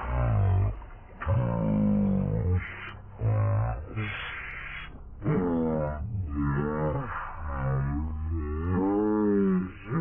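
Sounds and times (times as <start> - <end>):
slowed deep wavering voice groans: 0.0 - 10.0.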